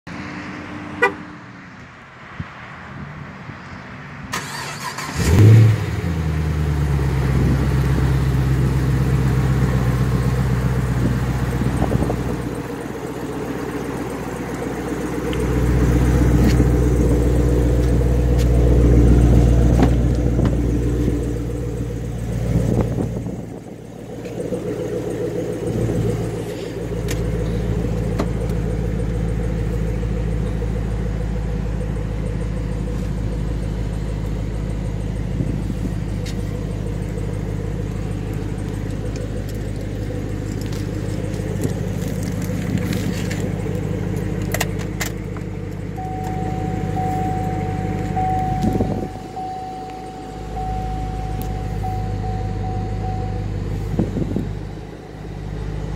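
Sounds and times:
car engine idling: 0:04.3 - 0:55.9.

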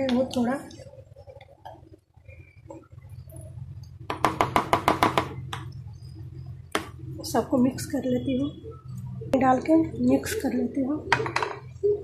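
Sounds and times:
spatula tapping plastic bowl: 0:04.0 - 0:05.8.

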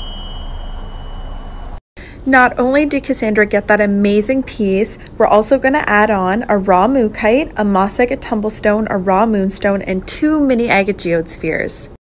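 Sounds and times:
small cymbals ringing: 0:00.0 - 0:01.8.

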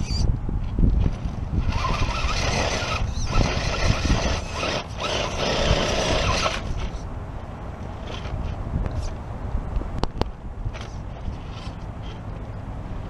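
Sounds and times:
low wind rumble on microphone: 0:00.0 - 0:13.0
electric motor and drivetrain whining: 0:01.0 - 0:07.0.

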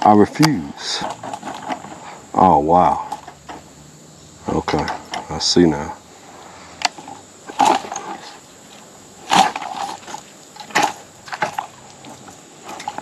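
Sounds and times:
twigs rustling: 0:00.0 - 0:03.8, 0:04.4 - 0:13.0
branches snapping: 0:06.8 - 0:08.2, 0:09.2 - 0:13.0.

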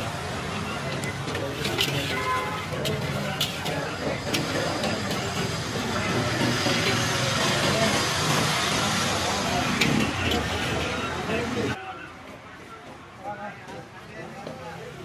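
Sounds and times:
busy street food stall din: 0:00.0 - 0:15.0
people talking: 0:00.0 - 0:15.0.

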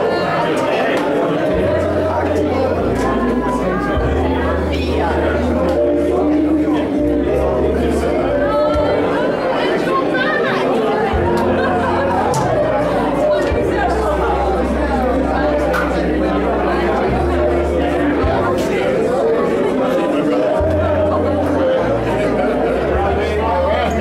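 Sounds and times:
crowd chatting: 0:00.0 - 0:24.0
background music with bass notes: 0:01.6 - 0:09.4, 0:11.1 - 0:24.0.

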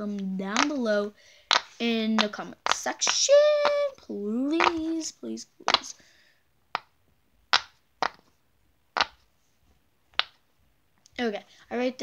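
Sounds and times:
fidget toy popping: 0:00.5 - 0:06.0, 0:06.7 - 0:09.3, 0:10.1 - 0:10.4.

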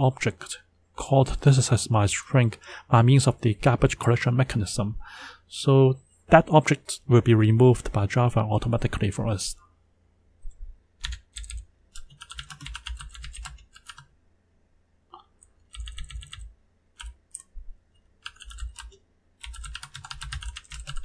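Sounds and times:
computer keyboard typing: 0:11.0 - 0:14.1, 0:15.6 - 0:17.5, 0:18.2 - 0:21.0.

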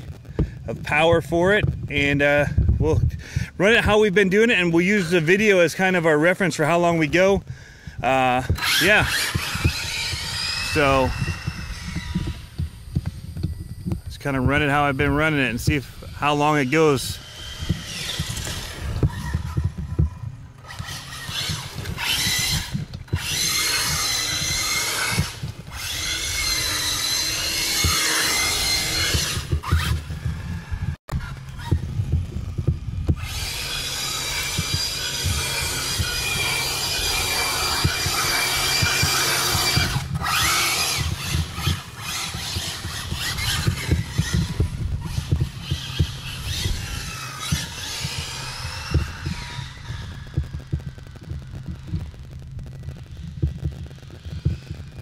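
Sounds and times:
steady low rumble: 0:00.0 - 0:55.0
electric motor whining: 0:01.6 - 0:07.4, 0:08.0 - 0:55.0
tyre noise on asphalt: 0:17.0 - 0:55.0.

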